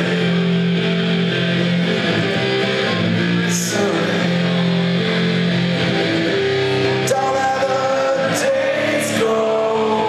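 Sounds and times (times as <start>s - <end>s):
electric guitar chords: 0.0s - 10.0s
live rock band: 0.0s - 10.0s.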